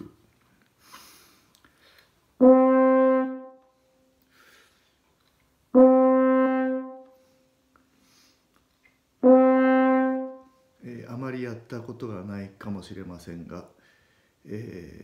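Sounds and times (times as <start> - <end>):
faint breath: 0.8 - 2.2, 3.7 - 5.0, 7.2 - 8.5, 13.8 - 14.4
french horn note: 5.8 - 7.2, 9.2 - 10.5.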